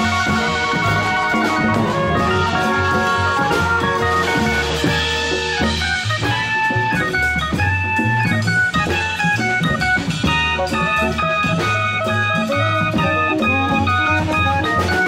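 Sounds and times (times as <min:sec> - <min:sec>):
bass line: 0:00.0 - 0:15.0
conga drums: 0:00.0 - 0:15.0
drum kit: 0:00.0 - 0:15.0
guitar: 0:00.0 - 0:15.0
keyboard notes: 0:00.0 - 0:15.0.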